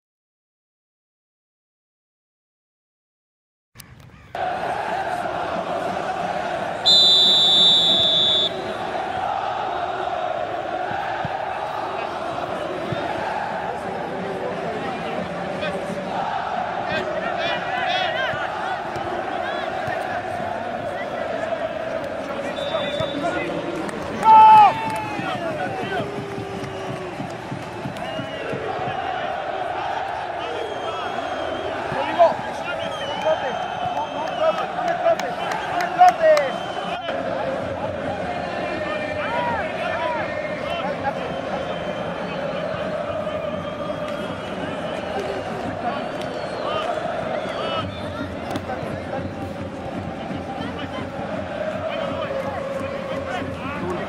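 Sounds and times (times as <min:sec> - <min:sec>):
voices of spectators and players: 0:03.8 - 0:54.0
referee's whistle: 0:06.8 - 0:08.8, 0:22.4 - 0:23.4, 0:30.4 - 0:32.1, 0:32.8 - 0:34.6, 0:36.4 - 0:37.0, 0:40.8 - 0:42.4, 0:43.6 - 0:48.9
loud shout: 0:24.1 - 0:27.2.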